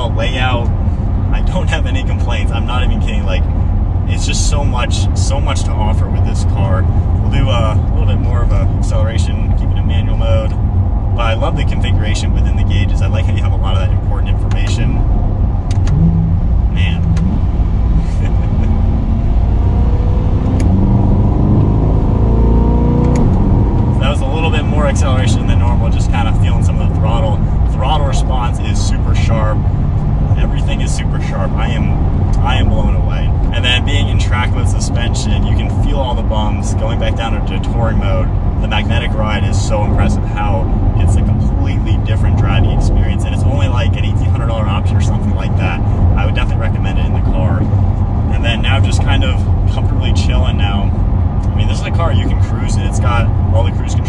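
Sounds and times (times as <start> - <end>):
man talking: 0.0 - 0.7, 1.3 - 15.0, 16.7 - 17.2, 24.0 - 29.6, 30.3 - 47.7, 48.3 - 54.0
car engine accelerating: 0.0 - 54.0
road noise: 0.0 - 54.0.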